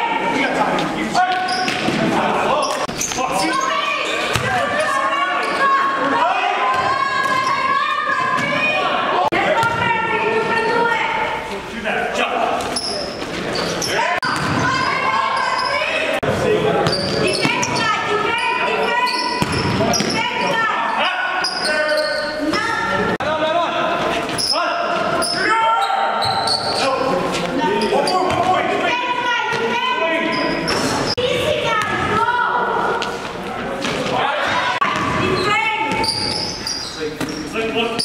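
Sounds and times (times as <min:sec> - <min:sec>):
players' voices: 0:00.0 - 0:38.0
basketball bouncing on gym floor: 0:14.2 - 0:14.9, 0:19.4 - 0:20.2.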